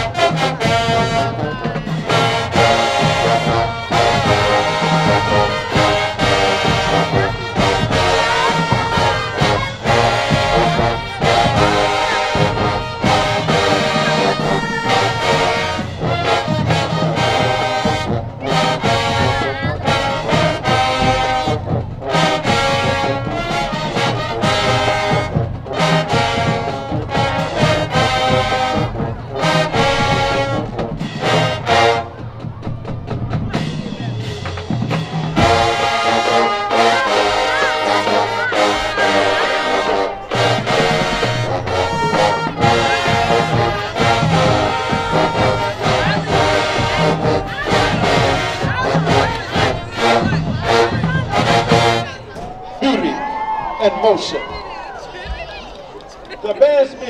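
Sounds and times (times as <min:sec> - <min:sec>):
brass section playing: 0:00.0 - 0:57.0
drumline percussion: 0:00.0 - 0:57.0.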